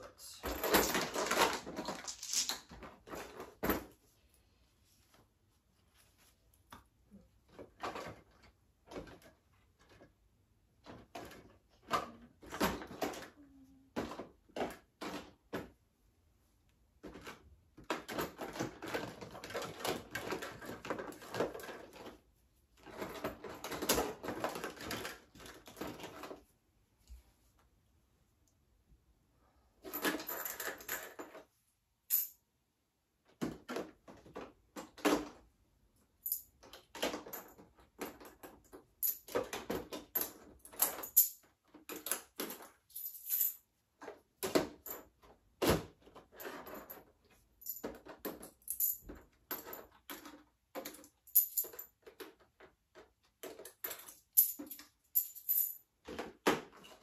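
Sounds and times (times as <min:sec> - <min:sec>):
small hard items clinking: 0:00.4 - 0:03.4
toys rattling in plastic bin: 0:00.4 - 0:03.9, 0:17.0 - 0:22.2, 0:22.8 - 0:26.4.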